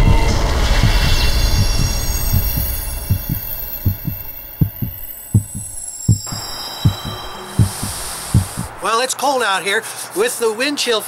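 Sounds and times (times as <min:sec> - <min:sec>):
heartbeat thumps: 0:00.0 - 0:08.8.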